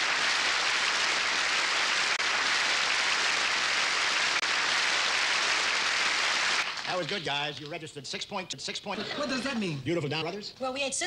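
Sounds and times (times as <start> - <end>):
audience applause: 0.0 - 7.7.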